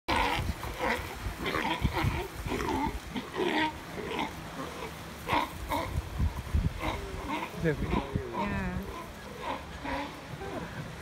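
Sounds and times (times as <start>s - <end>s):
sea lion calling: 0.1s - 11.0s.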